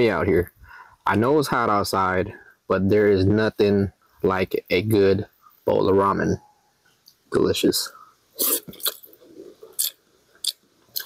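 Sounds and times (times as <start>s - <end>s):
chewing with full mouth: 8.4s - 11.0s
person slurping noodles: 8.4s - 11.0s.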